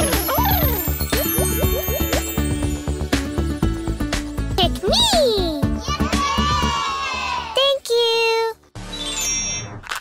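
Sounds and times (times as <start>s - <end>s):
children shouting and cheering: 4.9s - 7.9s
brief tone: 8.9s - 9.8s.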